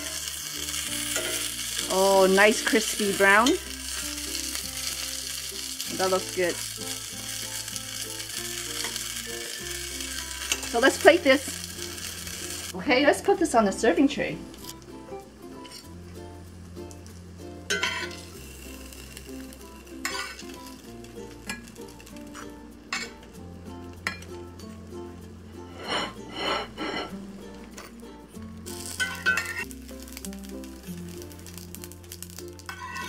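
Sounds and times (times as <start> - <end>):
metal spatula scraping pan: 25.7 - 27.2, 32.7 - 33.0.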